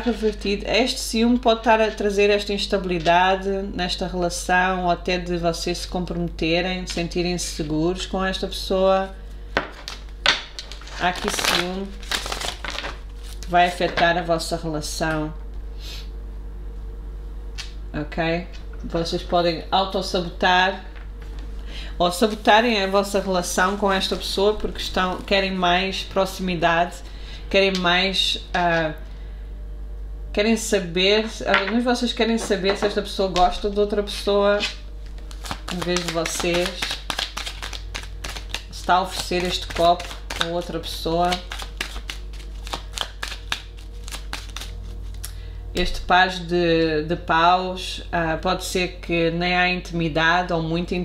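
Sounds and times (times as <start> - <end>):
low background hum: 0.0 - 51.0
cards being shuffled: 9.6 - 14.0, 32.7 - 45.2.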